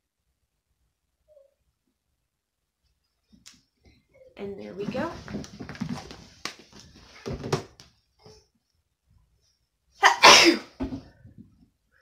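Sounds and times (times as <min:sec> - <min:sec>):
woman sneezing: 0:10.0 - 0:10.8.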